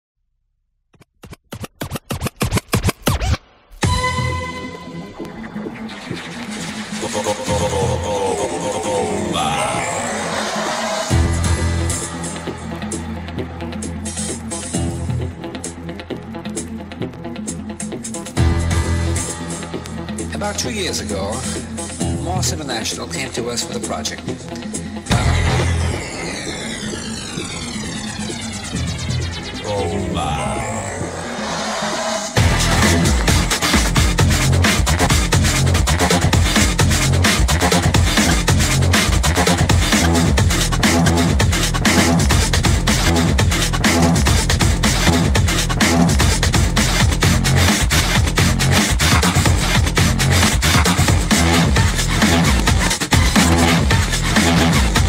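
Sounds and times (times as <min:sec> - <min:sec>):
record scratching on a turntable: 0:01.0 - 0:12.9, 0:20.5 - 0:55.0
music with a held note: 0:03.8 - 0:05.3
low bass drone: 0:11.1 - 0:13.6, 0:25.0 - 0:31.7, 0:32.4 - 0:39.0
electronic whoosh falling in pitch: 0:25.1 - 0:32.4.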